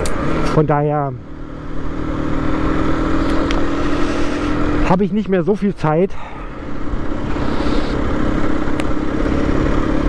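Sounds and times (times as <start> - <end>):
motorcycle engine drone: 0.0 - 10.0.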